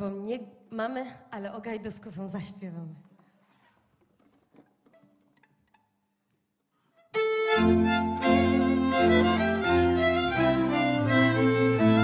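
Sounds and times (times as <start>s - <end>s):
fiddles playing a tune: 7.0s - 12.0s
bowed double bass: 7.4s - 12.0s.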